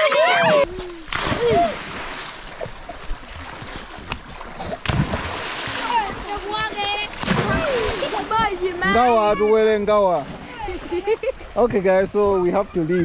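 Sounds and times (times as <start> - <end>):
children shouting: 0.0 - 1.8
children splashing in water: 0.0 - 11.6.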